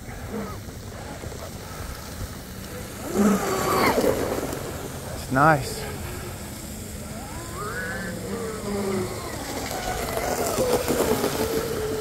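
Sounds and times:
electric motors whining: 0.0 - 12.0
water spray hissing: 0.0 - 12.0.

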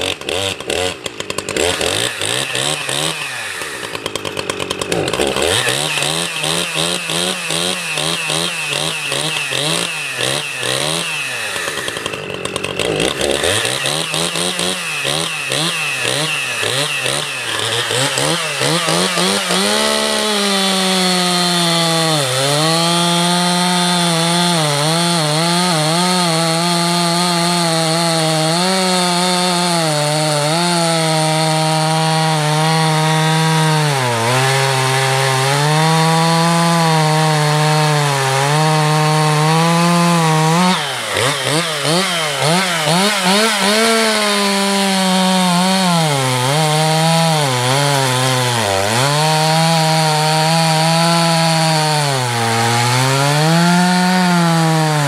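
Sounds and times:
chainsaw cutting log: 0.0 - 55.0
chainsaw revving: 0.0 - 55.0.

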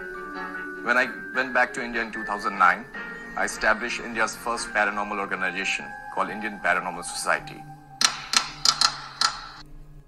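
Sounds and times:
sharp clicks: 8.0 - 9.6.

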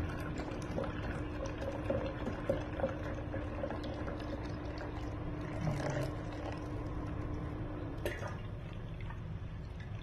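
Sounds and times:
milk pouring into a steel tumbler: 0.0 - 7.5.

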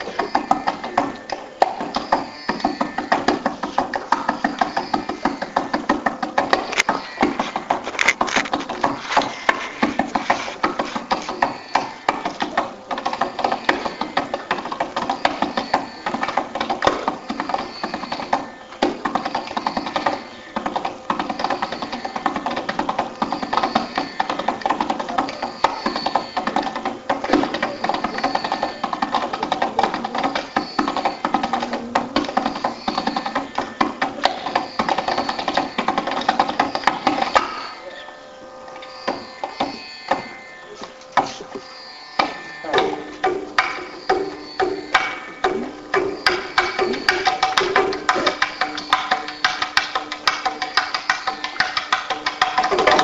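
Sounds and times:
steady drone: 0.0 - 53.0.

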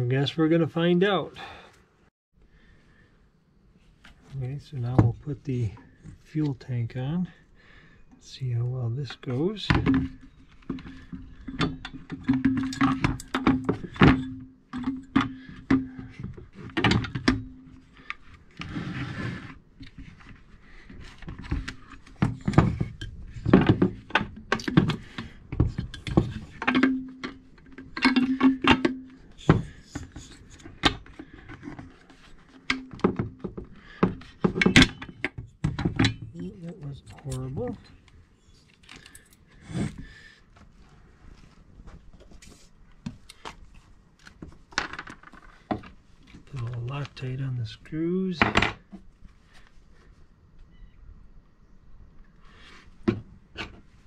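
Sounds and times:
plastic and metal parts clattering: 9.6 - 19.0, 19.8 - 38.0, 43.4 - 47.2.

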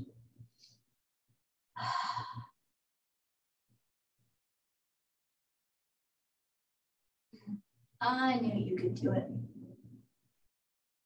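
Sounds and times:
woman sighing: 1.8 - 2.5.

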